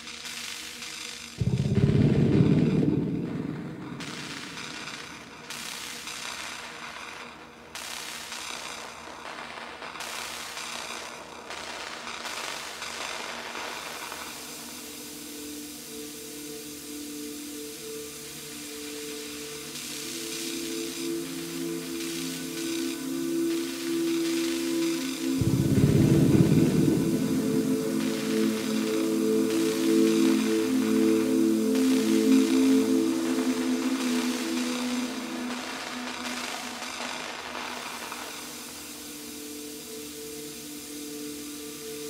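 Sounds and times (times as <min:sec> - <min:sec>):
deep noisy burst: 0:01.4 - 0:05.5, 0:25.3 - 0:31.6
droning synthesizer tones: 0:01.4 - 0:06.0, 0:14.8 - 0:42.0
hissing pulsing synthesizer noise: 0:01.4 - 0:06.7, 0:13.2 - 0:42.0.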